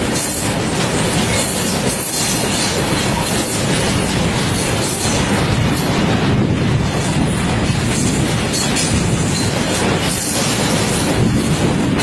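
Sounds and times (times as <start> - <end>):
freight train wheels on rail: 0.0 - 12.0.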